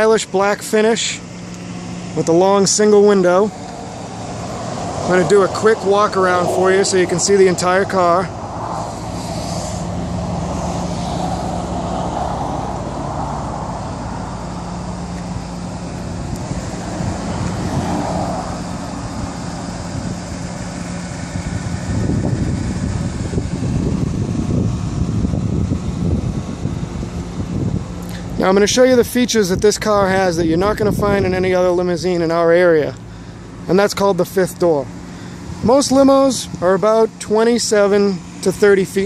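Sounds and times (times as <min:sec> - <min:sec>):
vehicles passing: 0:00.0 - 0:39.0
steady low hum: 0:00.3 - 0:39.0.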